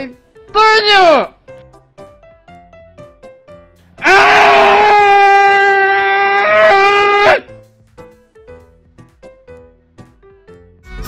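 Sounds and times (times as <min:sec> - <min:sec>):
loud scream: 0:04.0 - 0:07.5.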